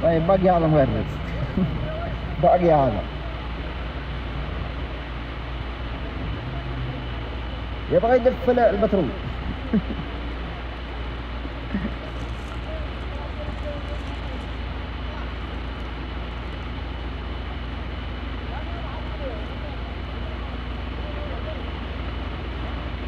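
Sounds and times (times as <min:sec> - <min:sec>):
steady low rumble: 0:00.0 - 0:23.0.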